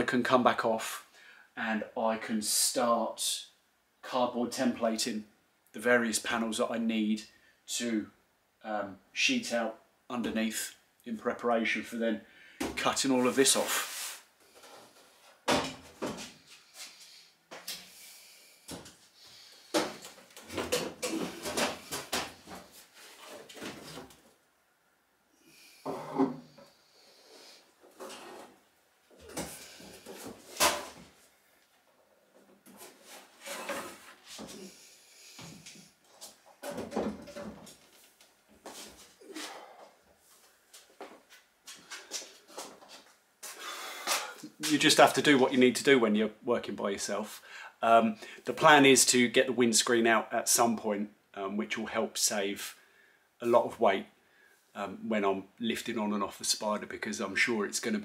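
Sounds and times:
knocks and clunks: 15.4 - 16.3, 36.5 - 37.8.

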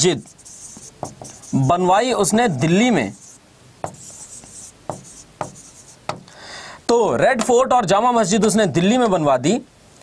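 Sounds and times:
stylus scratchy stroke: 0.0 - 1.9, 3.0 - 6.2
stylus tapping on touchscreen: 3.8 - 6.3.

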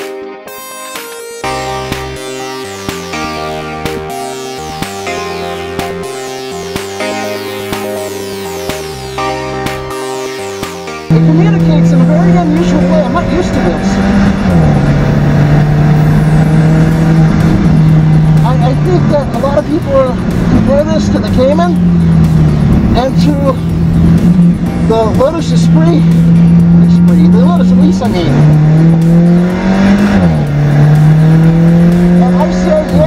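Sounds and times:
car engine revving hard: 11.1 - 33.0.

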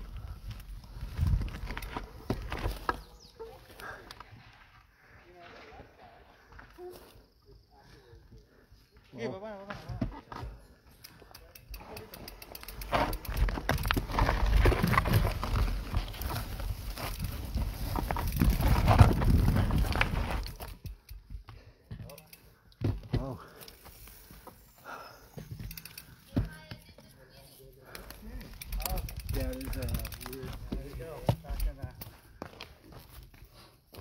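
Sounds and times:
bike rumbling on dirt trail: 0.0 - 6.8, 11.6 - 27.1, 27.8 - 34.0
scattered clicks: 11.0 - 14.0, 27.9 - 30.6.

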